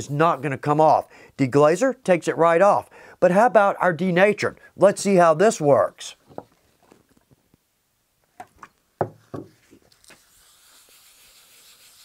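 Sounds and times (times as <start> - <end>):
knocks on wooden workbench: 9.0 - 9.6
paper towel scrubbing plastic: 9.9 - 12.0.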